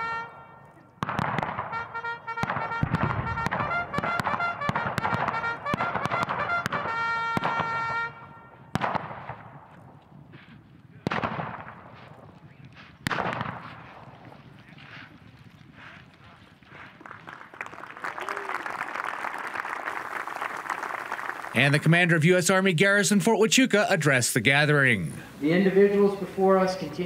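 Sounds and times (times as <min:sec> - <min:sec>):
trumpet call: 0:00.0 - 0:08.7
sharp cracks: 0:01.0 - 0:07.8, 0:08.8 - 0:09.8, 0:11.0 - 0:15.1.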